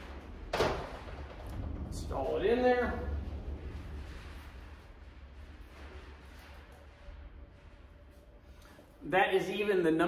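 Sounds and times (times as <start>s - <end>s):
steady low hum: 0.0s - 9.1s.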